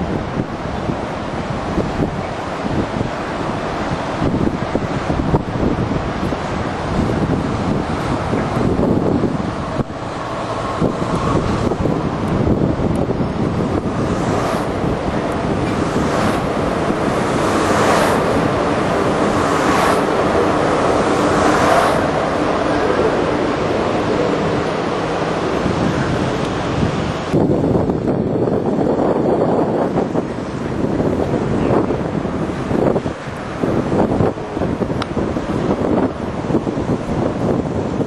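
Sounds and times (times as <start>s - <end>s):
monorail train rumble: 0.0s - 38.0s
wind on microphone: 0.0s - 38.0s.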